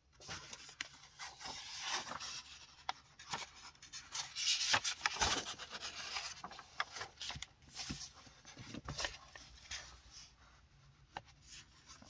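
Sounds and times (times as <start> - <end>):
book pages turning: 0.2 - 10.4.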